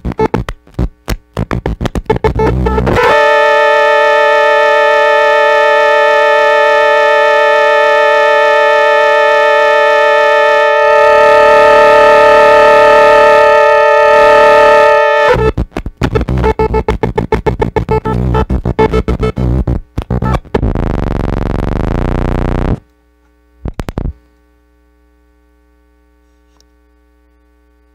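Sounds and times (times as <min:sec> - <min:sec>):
drone of held tones: 0:02.1 - 0:22.8
choppy rhythmic sound: 0:15.4 - 0:20.7.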